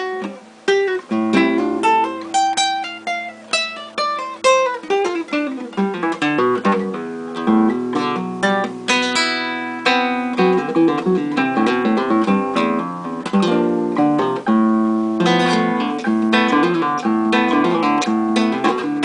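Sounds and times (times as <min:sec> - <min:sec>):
solo acoustic guitar: 0:00.0 - 0:19.0.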